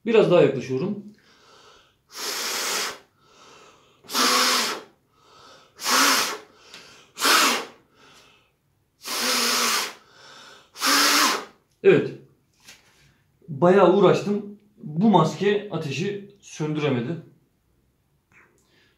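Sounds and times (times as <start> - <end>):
faint in-breaths: 1.2 - 2.2, 2.9 - 4.1, 5.0 - 5.8, 6.5 - 7.2, 7.8 - 8.6, 10.0 - 10.8, 18.4 - 18.9
man blowing through face mask: 1.3 - 8.4, 9.0 - 11.6.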